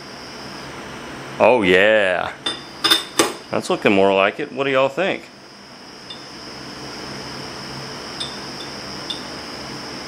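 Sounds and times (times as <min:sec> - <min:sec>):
thin high whine: 0:05.0 - 0:10.0.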